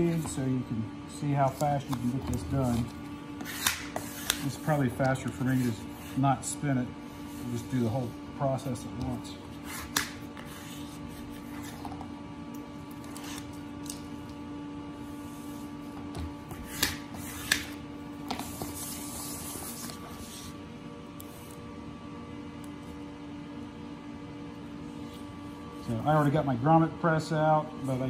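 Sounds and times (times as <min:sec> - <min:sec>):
steady low hum: 0:00.0 - 0:28.0
plastic squeegee rubbing tape: 0:01.4 - 0:06.1.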